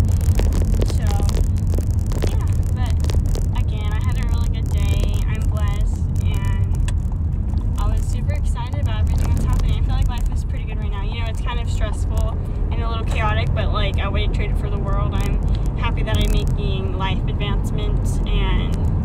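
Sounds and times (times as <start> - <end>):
car engine rumble in cabin: 0.0 - 19.0.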